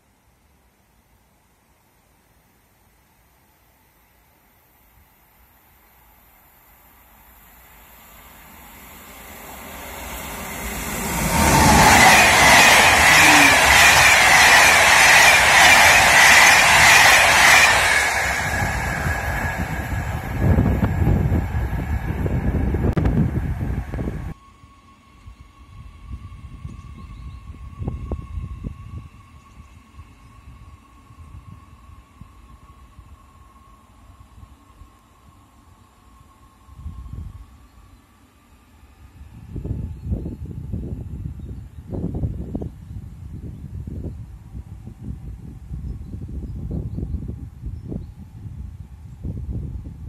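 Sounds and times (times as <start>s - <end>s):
train passing: 3.9s - 50.0s
rail clatter: 9.4s - 23.2s.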